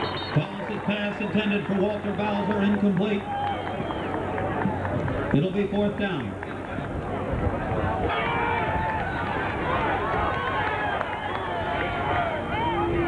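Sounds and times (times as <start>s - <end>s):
spectators chattering: 0.0s - 13.0s.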